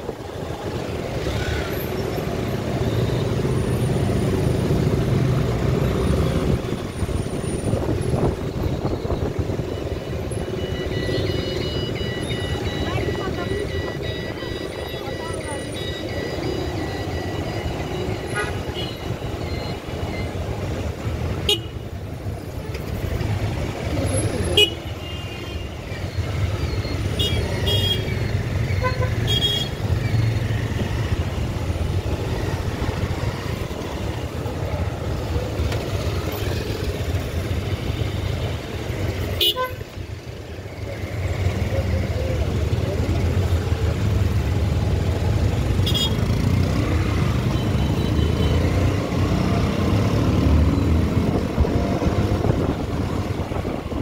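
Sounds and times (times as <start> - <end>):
traffic engines humming: 0.0 - 54.0.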